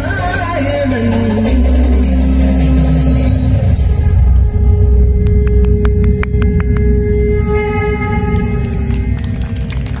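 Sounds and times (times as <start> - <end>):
sustained chord music: 1.3 - 10.0
deep low rumble: 2.0 - 10.0.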